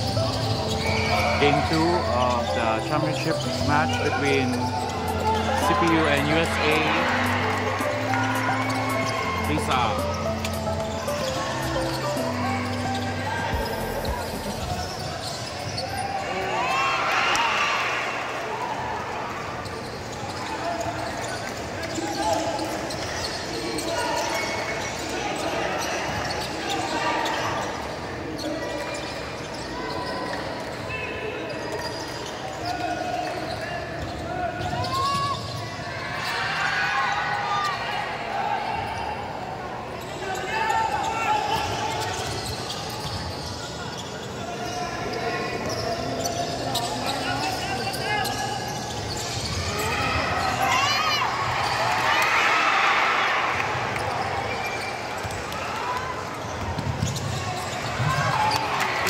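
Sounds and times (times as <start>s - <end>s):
voices of players and spectators: 0.0s - 59.0s.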